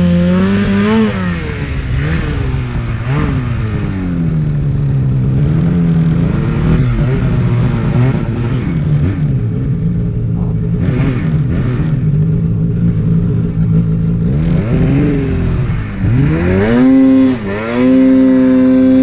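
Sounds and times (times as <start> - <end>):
snowmobile engine revving: 0.0 - 19.0.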